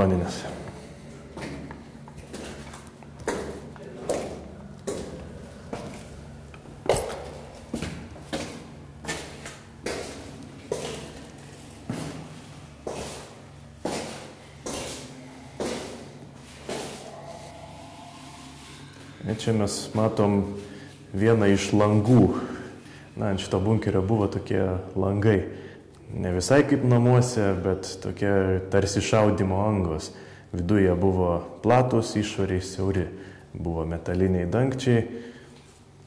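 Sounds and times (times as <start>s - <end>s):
footsteps on concrete echoing: 0.4s - 17.6s.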